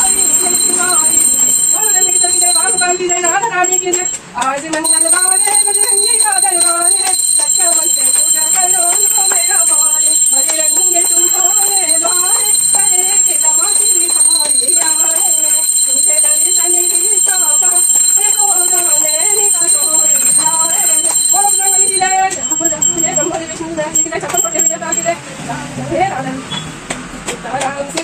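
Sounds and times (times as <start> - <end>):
high-pitched bell ringing: 0.0 - 4.2, 4.8 - 25.2
voices singing devotional song: 0.0 - 25.1
hands clapping: 26.9 - 28.0.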